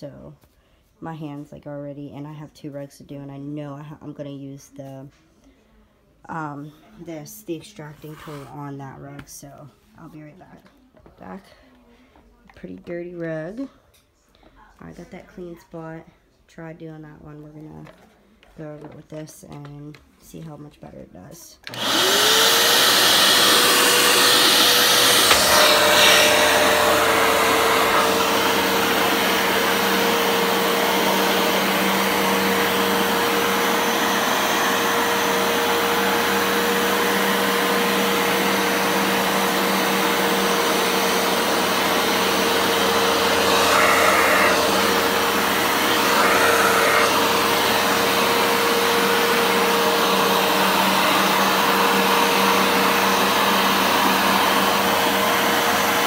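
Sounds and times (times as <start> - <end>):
carpet washer motor hum: 21.7 - 56.0.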